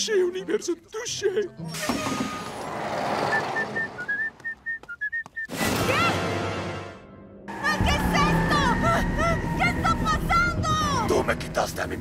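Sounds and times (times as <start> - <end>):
person whistling a tune: 3.3 - 5.5.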